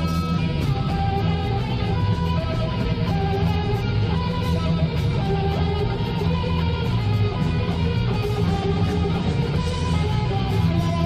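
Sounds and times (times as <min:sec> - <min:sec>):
heavy bass guitar: 0:00.0 - 0:11.0
live rock band: 0:00.0 - 0:11.0.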